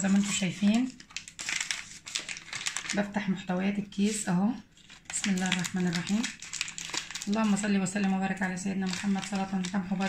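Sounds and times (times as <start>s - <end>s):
plastic sachet crinkling: 0.0s - 3.2s, 4.0s - 10.0s.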